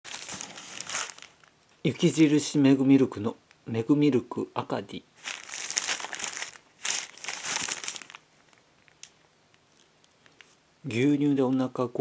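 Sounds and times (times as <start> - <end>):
plastic gloves crinkling: 0.0 - 2.2, 5.2 - 9.1.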